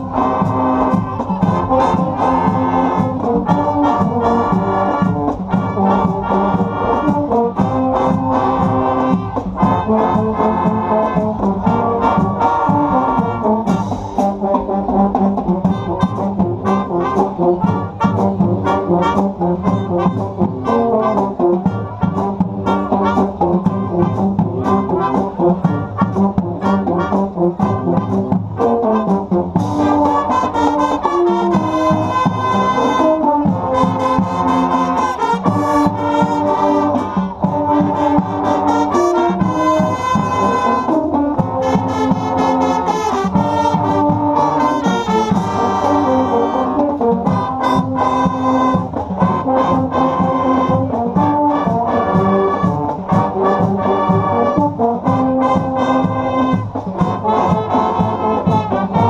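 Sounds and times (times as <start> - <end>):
marching band brass chords: 0.0 - 59.0
steady drum beat: 0.0 - 59.0.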